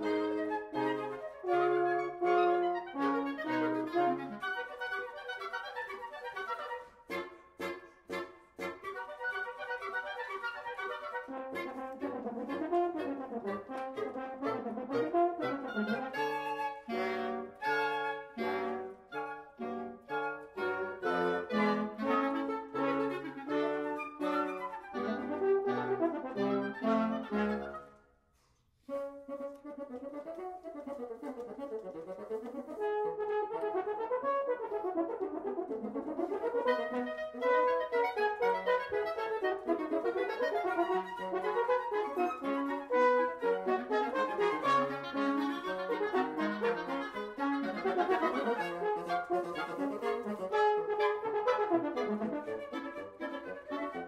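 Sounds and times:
wind quintet playing: 0.0s - 28.1s, 28.8s - 54.0s.

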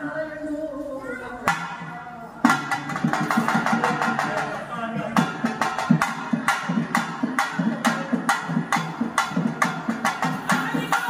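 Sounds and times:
cylindrical drums beaten rapidly: 1.5s - 11.0s.

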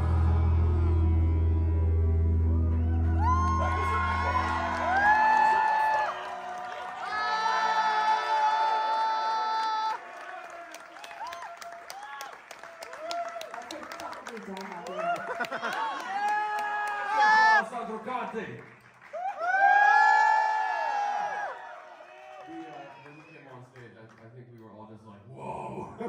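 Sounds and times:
crowd cheering and whooping: 0.0s - 13.8s, 14.8s - 17.6s, 19.1s - 23.1s
scattered applause: 2.6s - 24.7s.

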